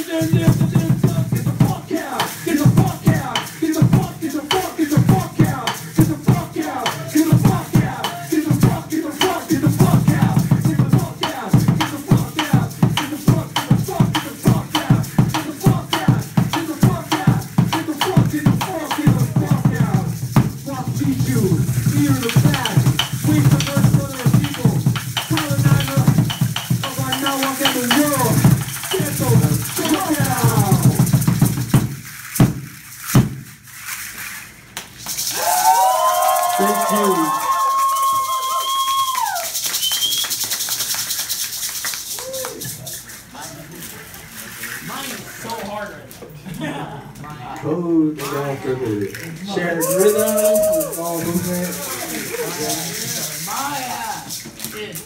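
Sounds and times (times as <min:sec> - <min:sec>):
wordless chanting: 0:00.0 - 0:26.2
wooden drum beaten fast: 0:00.0 - 0:33.5
rattles shaking: 0:00.0 - 0:46.1, 0:48.2 - 0:55.0
long wavering cry: 0:35.3 - 0:39.6, 0:49.8 - 0:51.0.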